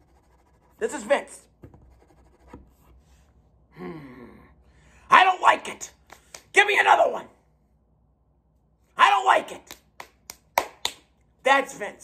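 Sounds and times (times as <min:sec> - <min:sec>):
man sighing: 0:03.7 - 0:05.0.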